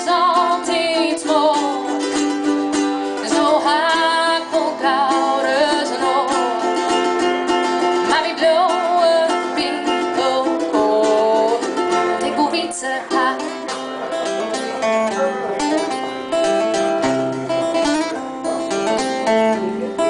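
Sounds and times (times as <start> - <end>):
woman singing: 0.0 - 13.8
acoustic guitar: 0.0 - 20.0
ukulele: 0.0 - 20.0.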